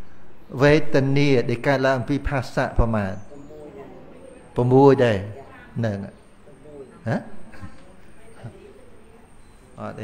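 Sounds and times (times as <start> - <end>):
soft murmurs: 2.8 - 10.0.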